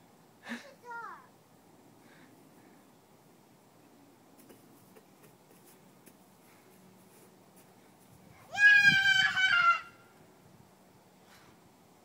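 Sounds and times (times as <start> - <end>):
child squealing: 8.5 - 10.0.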